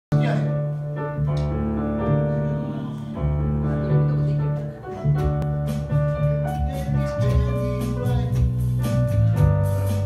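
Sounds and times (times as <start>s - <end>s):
small band playing live: 0.1s - 10.0s.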